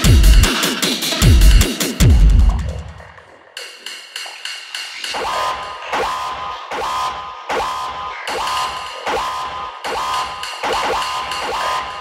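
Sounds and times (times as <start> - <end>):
hard techno music: 0.0 - 12.0.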